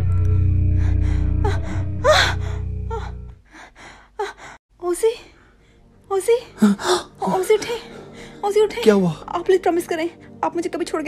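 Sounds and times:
low droning music: 0.0s - 4.0s, 4.7s - 11.0s
woman gasping and whimpering: 0.9s - 4.6s.

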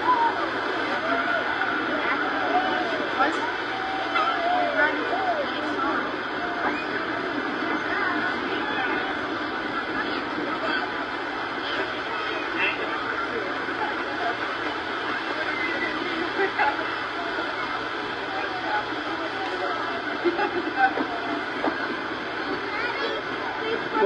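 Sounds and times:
crowd chatter: 0.0s - 24.0s
steady background noise: 0.0s - 24.0s.

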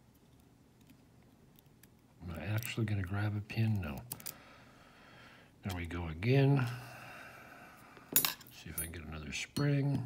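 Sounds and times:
metallic clink: 8.1s - 9.0s.

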